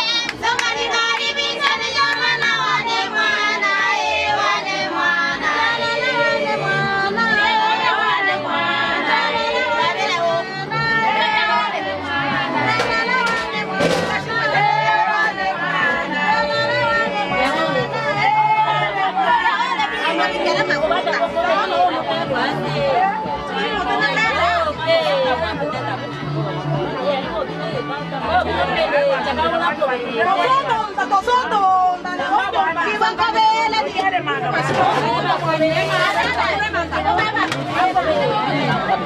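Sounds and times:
music playing: 0.0 - 39.0
women talking and calling out: 26.9 - 39.0.

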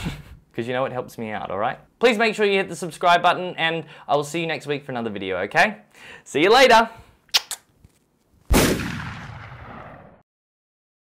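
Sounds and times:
short clicks: 7.3 - 7.7
loud bang: 8.5 - 10.2.

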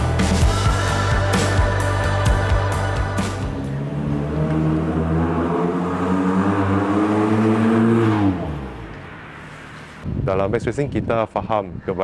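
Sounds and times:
car engine accelerating: 1.2 - 10.0.

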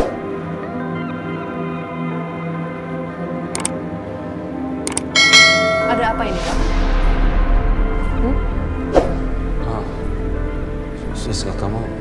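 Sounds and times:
background music: 0.0 - 12.0
bright bell ding: 5.2 - 6.4.

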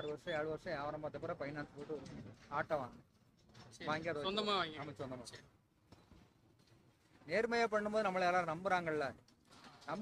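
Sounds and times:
man talking: 7.3 - 9.2.

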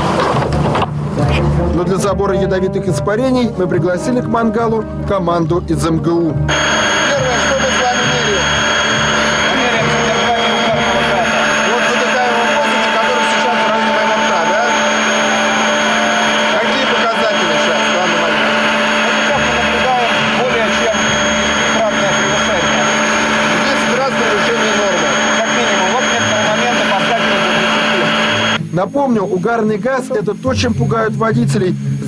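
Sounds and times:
men talking: 1.7 - 31.8
machine drone with high whine: 6.4 - 32.0.

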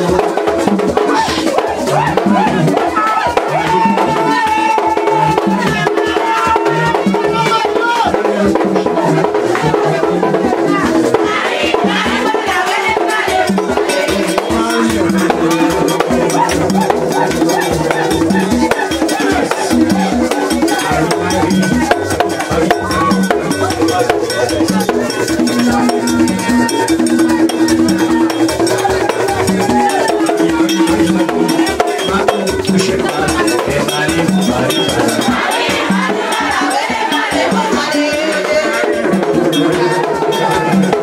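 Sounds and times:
drums and percussion beat: 0.0 - 41.0
sung chanting: 0.0 - 41.0.

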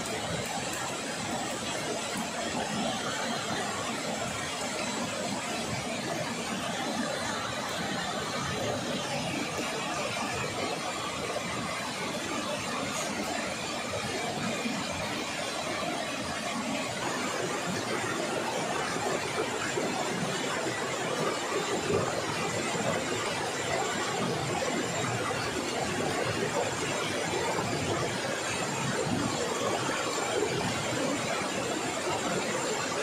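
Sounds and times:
river rushing: 0.0 - 33.0.

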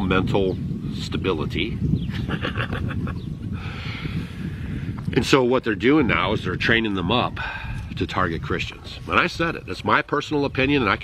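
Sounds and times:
man laughing: 2.1 - 3.6
breathy exhale: 3.6 - 5.0.

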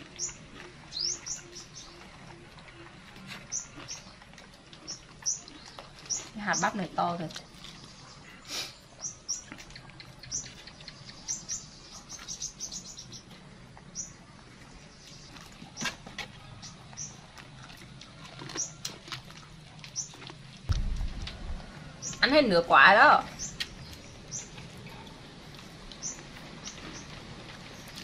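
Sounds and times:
monkeys gnawing corn cobs: 0.0 - 14.1, 14.8 - 22.4, 23.4 - 28.0
small birds chirping: 0.0 - 17.4, 19.9 - 20.2, 20.8 - 28.0
low rumble: 20.7 - 24.3.

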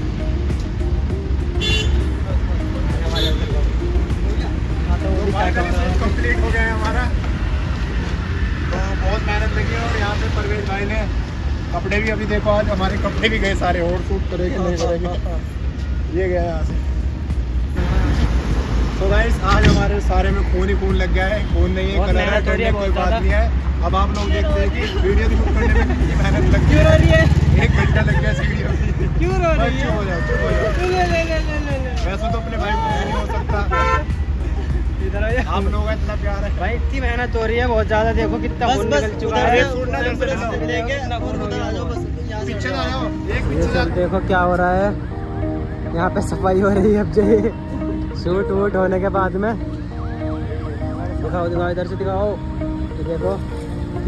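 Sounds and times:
vehicle engine rumbling: 0.0 - 54.0.

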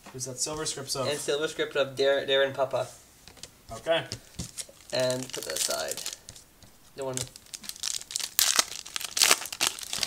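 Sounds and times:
foil wrapper crinkling and tearing: 4.5 - 10.0.

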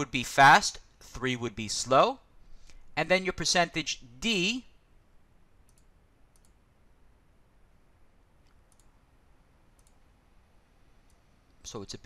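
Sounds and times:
faint computer mouse clicks: 5.7 - 6.6, 8.4 - 9.0, 9.8 - 10.0.

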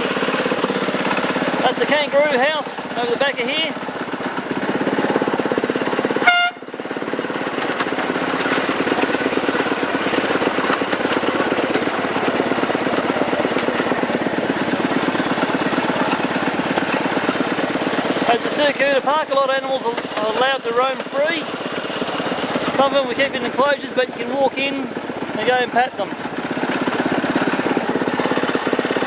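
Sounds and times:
miniature locomotive running on track: 0.0 - 29.0
locomotive toot: 6.2 - 6.8.

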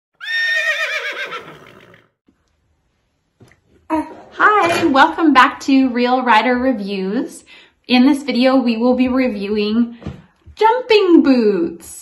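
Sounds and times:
horse whinnying: 0.2 - 2.2.

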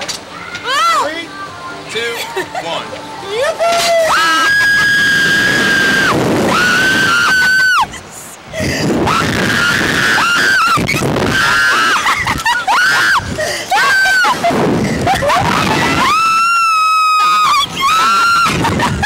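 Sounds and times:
women laughing: 2.1 - 5.2, 7.0 - 8.9, 10.6 - 19.0
women screaming: 3.3 - 8.1, 9.0 - 19.0.

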